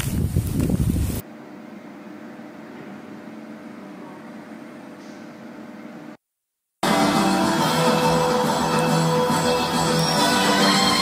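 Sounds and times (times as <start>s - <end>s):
wind buffeting microphone: 0.0s - 1.2s
indoor room tone hum: 1.2s - 6.2s.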